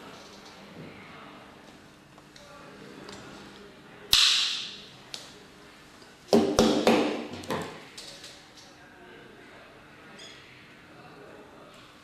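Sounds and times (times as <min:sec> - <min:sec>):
stripping tool snap: 0:04.1 - 0:04.7.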